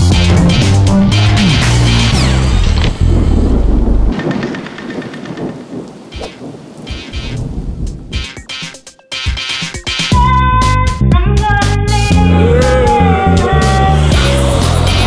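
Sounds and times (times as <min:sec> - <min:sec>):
upbeat music with heavy bass: 0:00.0 - 0:03.5, 0:08.1 - 0:15.0
rain: 0:02.2 - 0:08.6
low rumbles of thunder: 0:03.0 - 0:08.2.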